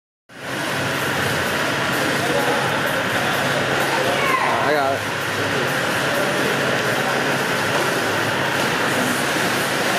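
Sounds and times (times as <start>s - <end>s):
swimmers splashing in echoing hall: 5.0s - 9.9s.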